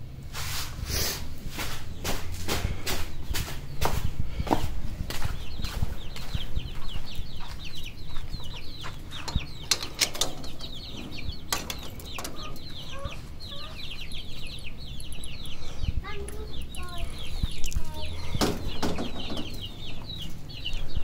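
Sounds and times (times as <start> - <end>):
caged birds chirping: 0.0 - 21.0
chicken clucking: 2.8 - 21.0
wire cage door clicking: 9.2 - 13.1.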